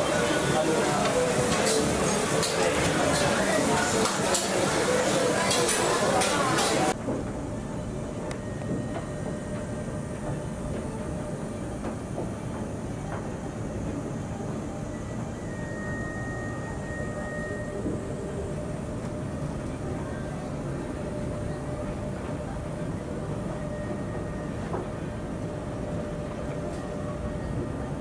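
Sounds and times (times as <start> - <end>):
ship interior rumble and hum: 6.1 - 28.0.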